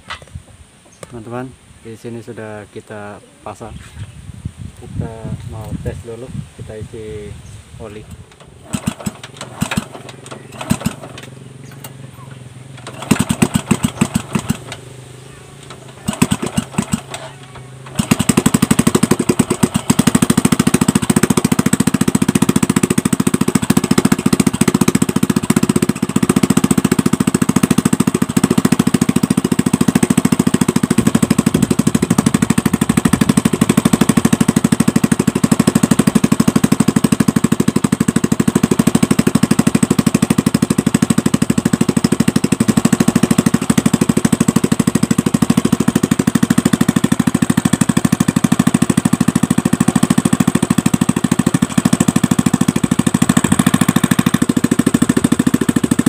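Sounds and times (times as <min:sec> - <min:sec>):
motorcycle engine idling: 0:04.8 - 0:56.0.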